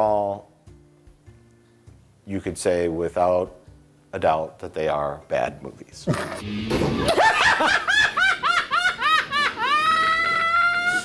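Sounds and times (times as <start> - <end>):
man laughing: 6.9 - 10.6.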